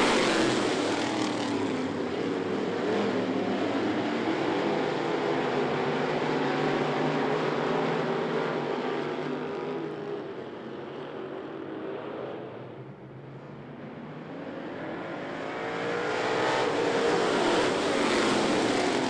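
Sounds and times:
race car engines: 0.0 - 19.0.

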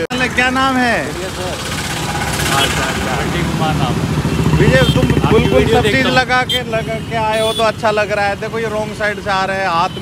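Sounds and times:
man talking: 2.4 - 10.0.

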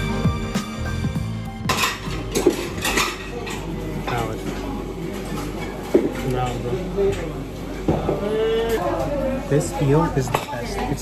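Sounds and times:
music with steady beat: 0.0 - 2.6
dishes and cutlery clinking: 1.6 - 7.3.

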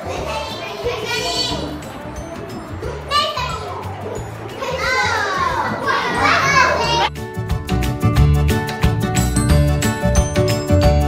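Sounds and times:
children calling out: 0.0 - 7.1
background music ticking rhythm: 0.0 - 11.0.

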